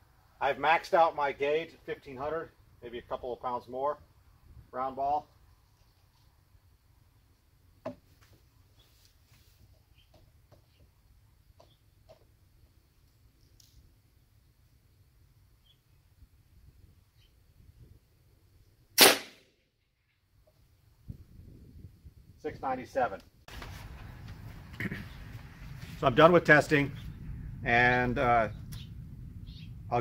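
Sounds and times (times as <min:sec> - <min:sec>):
airgun shot: 0:19.0 - 0:19.5.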